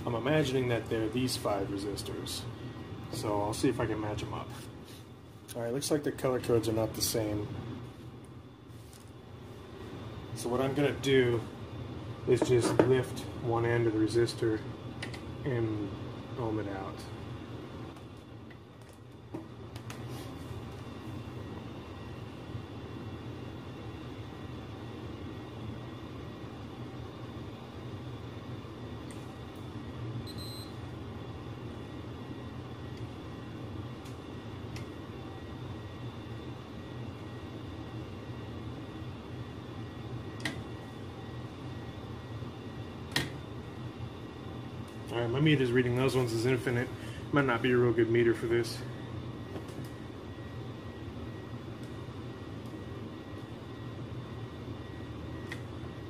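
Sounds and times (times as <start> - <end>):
furnace running: 0.0 - 56.0
high beep: 30.3 - 30.8.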